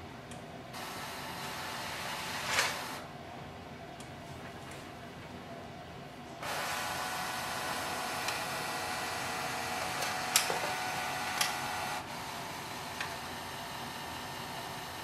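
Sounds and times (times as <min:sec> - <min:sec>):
document feeder motor whirring: 0:06.4 - 0:15.0.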